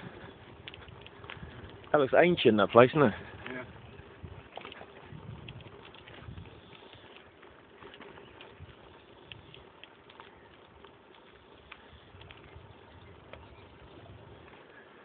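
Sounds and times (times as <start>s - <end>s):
light irregular clicks: 0.0s - 3.6s, 4.5s - 15.0s
wind on microphone rumble: 0.0s - 6.9s, 8.2s - 9.7s, 11.7s - 14.7s.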